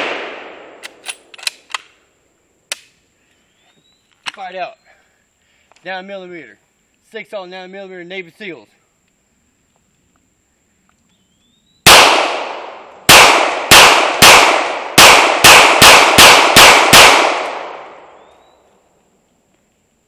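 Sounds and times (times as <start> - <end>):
pistol shots echoing: 0.0 - 0.8, 11.9 - 18.2.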